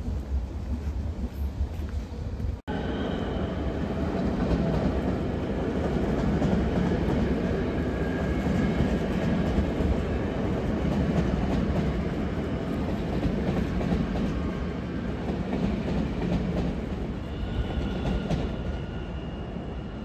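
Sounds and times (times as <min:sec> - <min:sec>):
train rumble: 0:00.0 - 0:20.0.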